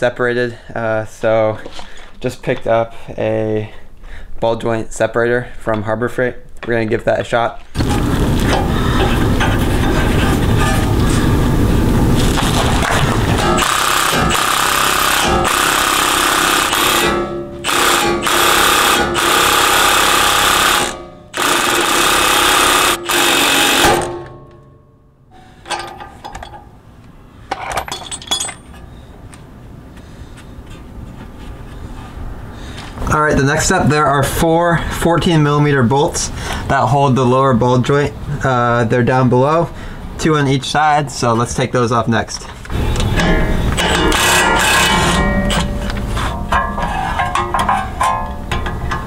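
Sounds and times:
impact wrench hammering: 12.4 - 24.8, 25.6 - 26.7, 43.0 - 49.0
metal clicks and handling: 25.6 - 28.9.

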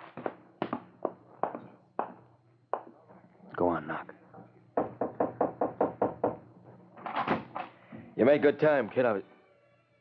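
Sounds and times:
knocking on a door: 4.8 - 6.5.

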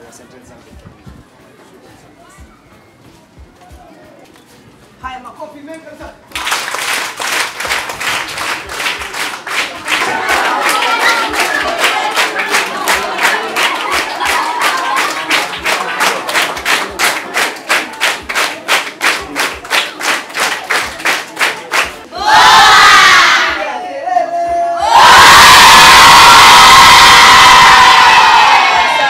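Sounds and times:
girls clapping hands: 6.3 - 22.0
crowd cheering and shouting: 22.1 - 29.0.

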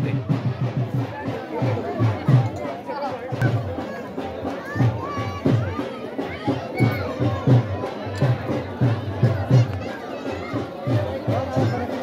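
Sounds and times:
crowd voices: 0.0 - 12.0
drum beating a steady rhythm: 0.0 - 12.0.

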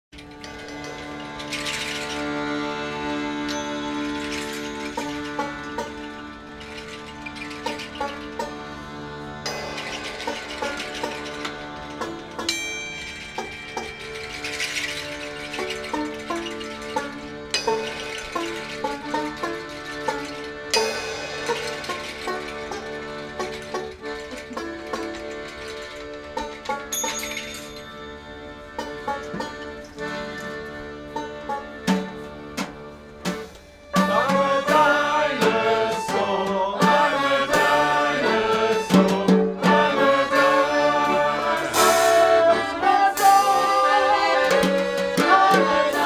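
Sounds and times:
accordion chords: 0.2 - 46.0
banjo: 0.2 - 46.0.

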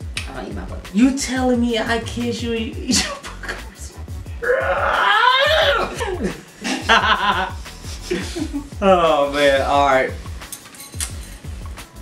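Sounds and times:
background music with beat: 0.0 - 12.0
person groaning in disgust: 4.4 - 6.4.

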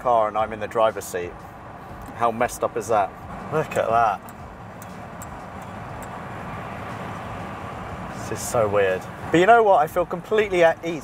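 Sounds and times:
road and wind noise in car: 0.0 - 11.0.

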